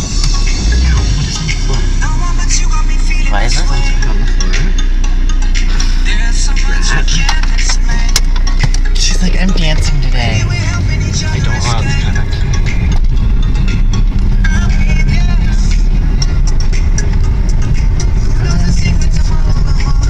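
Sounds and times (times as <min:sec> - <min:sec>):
car driving low rumble: 0:00.0 - 0:20.0
person speaking: 0:01.0 - 0:02.2, 0:03.1 - 0:04.8, 0:06.5 - 0:07.6, 0:08.8 - 0:12.3.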